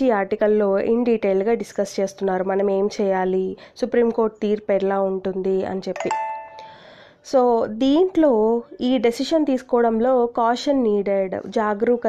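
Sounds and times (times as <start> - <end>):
woman speaking: 0.0 - 6.2, 7.2 - 12.0
short electronic chime: 6.0 - 6.9.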